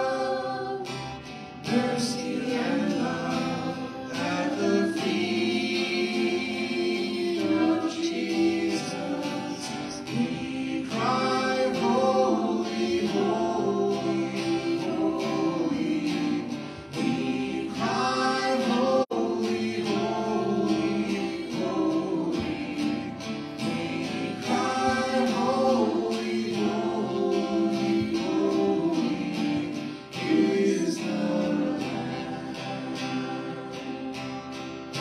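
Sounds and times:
acoustic guitar: 0.0 - 35.0
voices singing worship song: 0.0 - 35.0.

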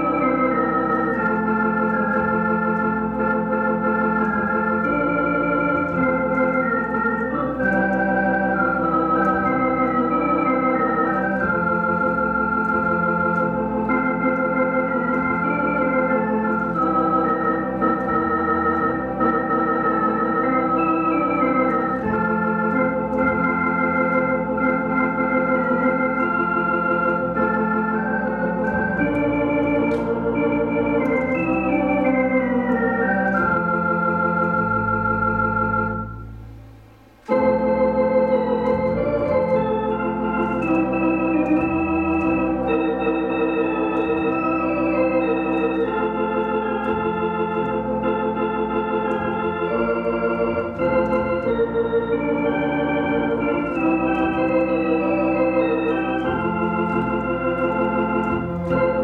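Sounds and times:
electronic organ playing a hymn: 0.0 - 59.0.

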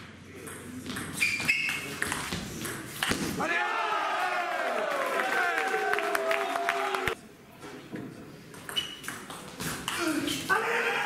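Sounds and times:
table tennis ball bouncing: 0.4 - 3.2.

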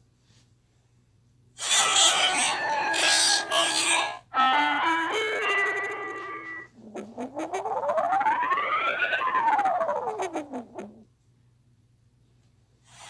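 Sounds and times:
wailing tone sliding in pitch: 1.6 - 11.0
logo jingle held notes: 4.3 - 6.8.

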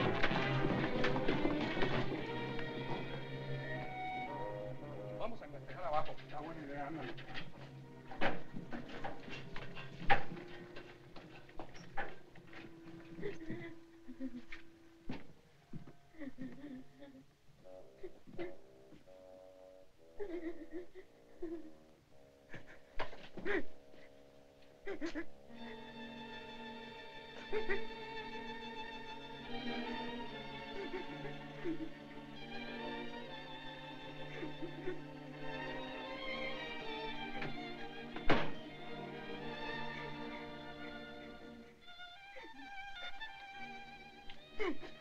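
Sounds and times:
film score music: 0.0 - 45.0.

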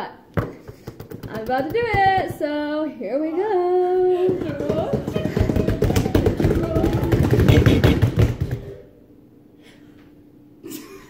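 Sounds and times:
hands slapping countertop drumroll: 0.4 - 2.6, 4.1 - 8.9.

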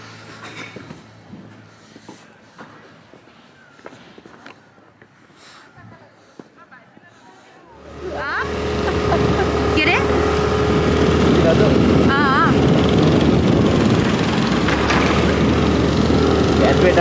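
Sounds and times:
vehicle engine and road noise: 0.0 - 5.3, 6.8 - 17.0
people's voices: 5.5 - 10.4, 11.0 - 13.2.

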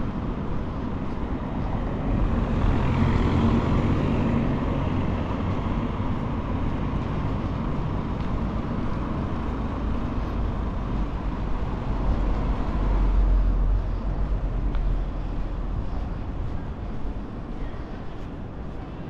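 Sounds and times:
cars driving past: 0.0 - 19.0.

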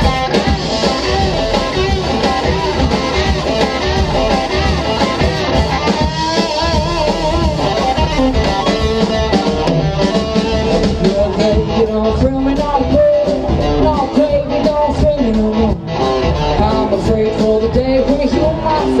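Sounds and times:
rock band playing: 0.0 - 19.0
wavering held guitar notes: 0.0 - 19.0.

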